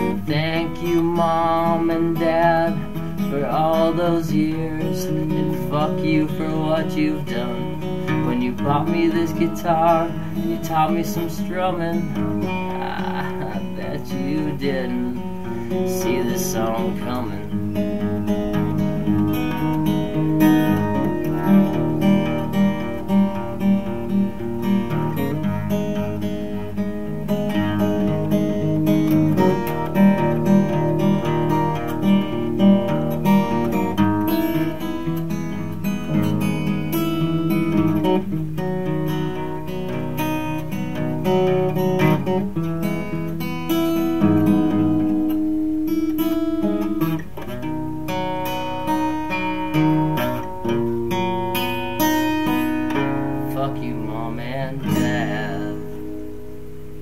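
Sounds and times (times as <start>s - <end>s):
solo acoustic guitar: 0.0s - 57.0s.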